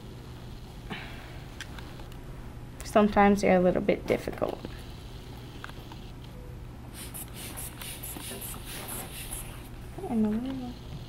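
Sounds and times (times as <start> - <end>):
short air hisses from bulb valve: 6.9 - 9.6.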